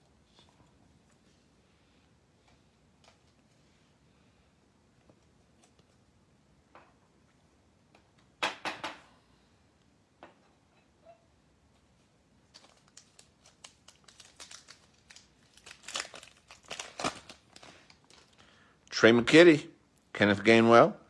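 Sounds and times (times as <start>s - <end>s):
wrapper tearing and crinkling: 12.4s - 18.4s.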